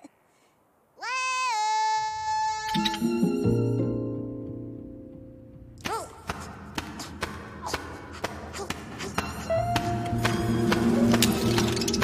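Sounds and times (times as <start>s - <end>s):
cartoon character high-pitched cry: 1.0s - 2.9s.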